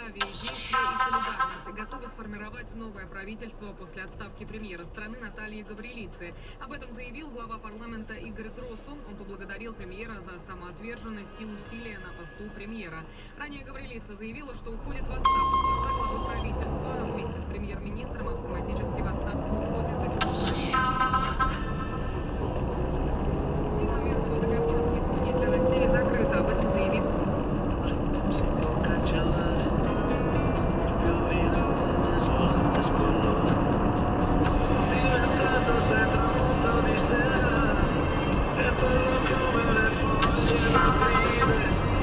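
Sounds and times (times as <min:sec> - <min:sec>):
car radio playing: 0:00.0 - 0:42.0
car engine accelerating: 0:14.5 - 0:42.0.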